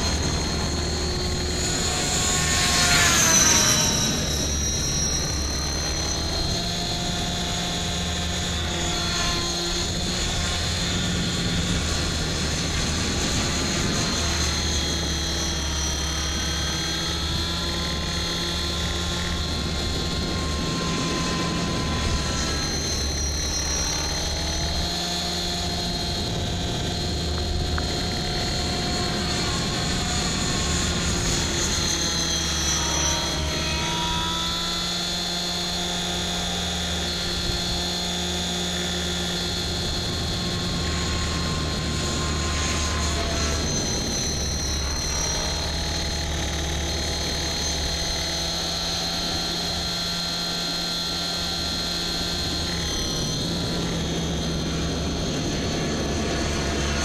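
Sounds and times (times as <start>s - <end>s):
rc helicopter high whine: 0.0s - 57.0s.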